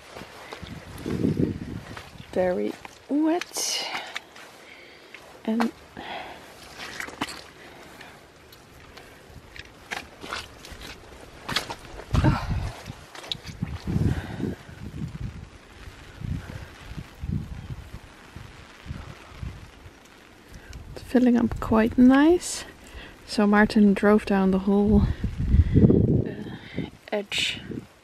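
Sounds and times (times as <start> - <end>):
boots walking on muddy ground: 0.0 - 15.2.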